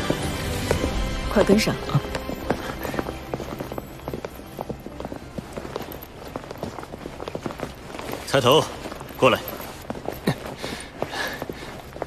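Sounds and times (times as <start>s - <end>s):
footsteps on hard floor: 0.0s - 12.0s.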